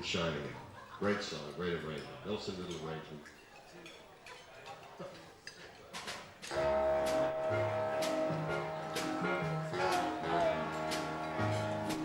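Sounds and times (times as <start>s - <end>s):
swing big band playing: 6.5s - 12.0s.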